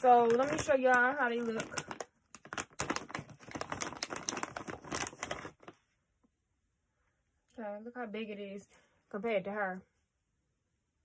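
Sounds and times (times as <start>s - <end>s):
plastic packaging crinkling: 0.0s - 5.8s.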